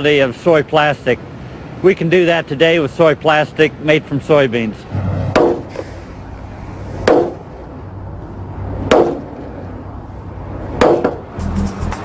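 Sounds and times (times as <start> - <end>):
mallet knocking plastic panel: 10.8 - 11.2
music: 11.4 - 12.0.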